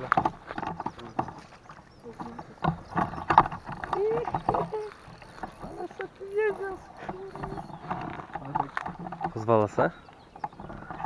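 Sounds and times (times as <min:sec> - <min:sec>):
people talking indistinctly: 0:00.0 - 0:10.1
clicks and knocks: 0:02.2 - 0:09.8.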